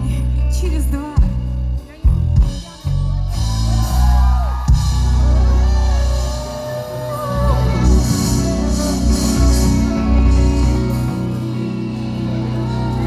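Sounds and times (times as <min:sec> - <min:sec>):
booming bass: 0:00.0 - 0:13.0
live pop band playing: 0:00.0 - 0:13.0.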